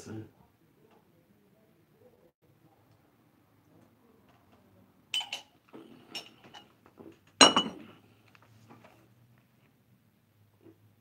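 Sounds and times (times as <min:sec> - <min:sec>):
ceramic mug clinking: 0:05.1 - 0:06.7, 0:07.4 - 0:07.9.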